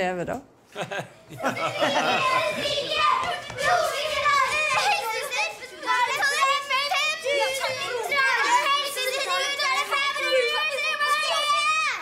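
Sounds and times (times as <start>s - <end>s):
young children shouting and chattering: 1.0s - 12.0s.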